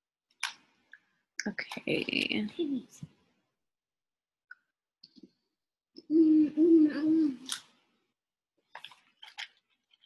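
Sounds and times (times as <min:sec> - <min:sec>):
woman humming: 0:06.0 - 0:07.5.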